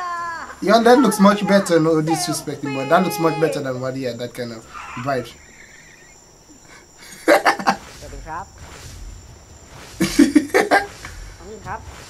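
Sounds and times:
man laughing: 5.6 - 7.9, 10.0 - 11.2.

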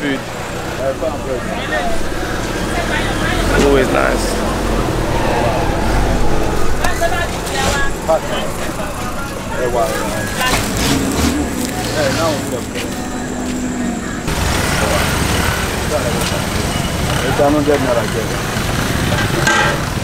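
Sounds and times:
people talking: 0.0 - 19.8
road traffic: 0.0 - 20.0.

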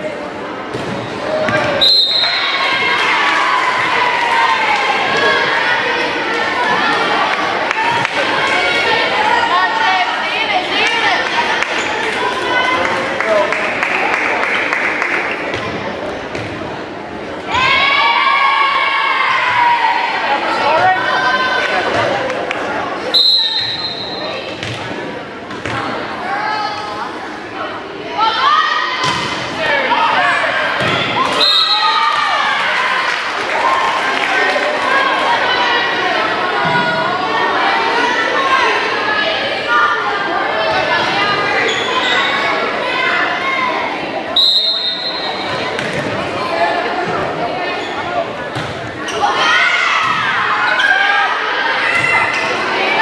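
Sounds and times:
spectators chatting and shouting: 0.0 - 53.0
voices in gym: 0.0 - 53.0
referee whistle blast: 1.8 - 2.5, 23.1 - 24.2, 44.4 - 45.4
volleyball hits: 29.0 - 29.6, 45.4 - 46.3.

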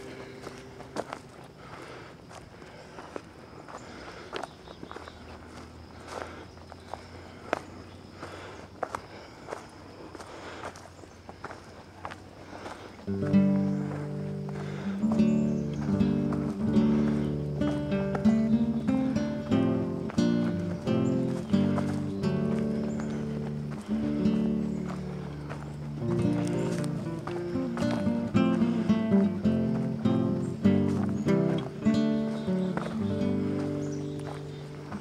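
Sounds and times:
acoustic guitar music: 0.0 - 1.0, 13.0 - 35.0
footsteps on leafy dirt path: 0.0 - 35.0.

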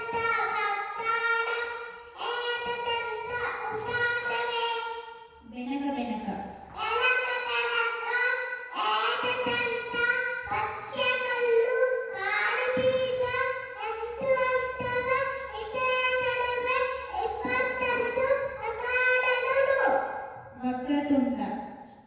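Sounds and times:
boy chanting into a microphone: 0.0 - 4.9, 6.8 - 20.1.

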